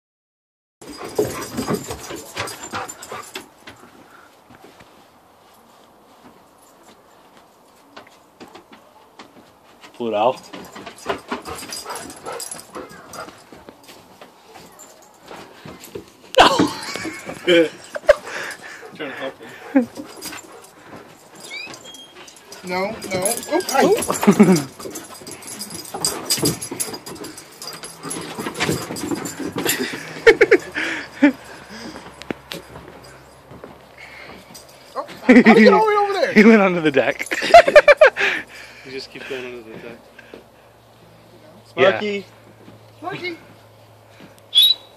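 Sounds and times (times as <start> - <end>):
dogs panting and whimpering: 0.8 - 4.3, 10.4 - 13.6, 15.7 - 36.4
dog whimpering: 21.4 - 22.4
dog yipping: 21.4 - 22.4.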